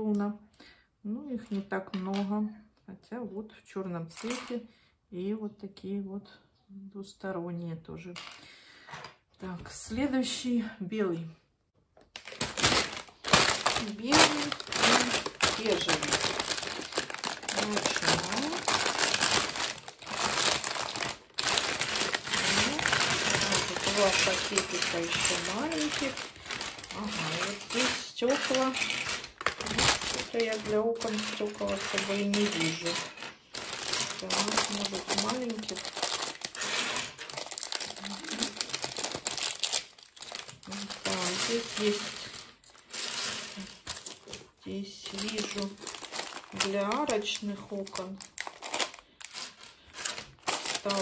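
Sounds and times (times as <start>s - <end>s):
plastic bag crinkling: 12.0s - 51.0s
plastic bricks rattling: 12.1s - 51.0s.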